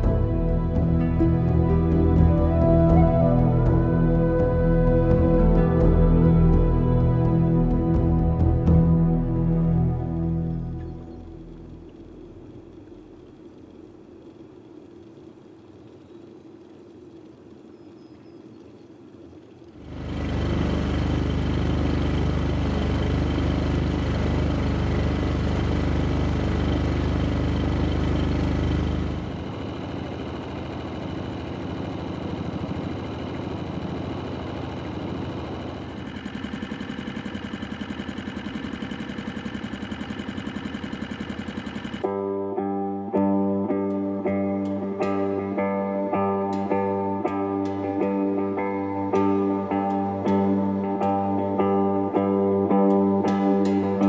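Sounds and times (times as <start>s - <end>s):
boat engine running: 0.0s - 54.0s.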